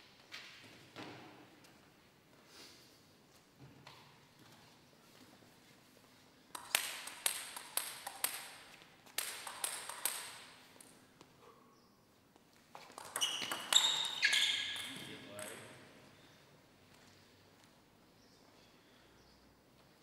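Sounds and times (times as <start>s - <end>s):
table tennis ball hits: 6.6s - 10.6s, 12.7s - 15.9s.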